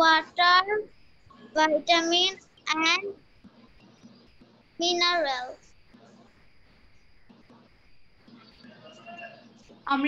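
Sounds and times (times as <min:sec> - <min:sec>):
child reciting sing-song syllables: 0:01.6 - 0:03.2, 0:04.8 - 0:05.6.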